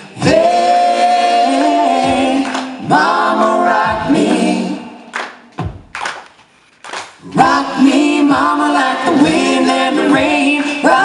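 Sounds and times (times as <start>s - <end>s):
sharp hand claps: 2.4s - 2.7s, 5.1s - 7.2s.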